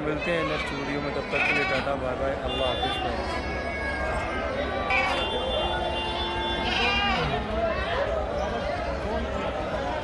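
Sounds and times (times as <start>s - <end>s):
crowd chatter: 0.0s - 10.0s
young goats bleating: 6.6s - 7.3s.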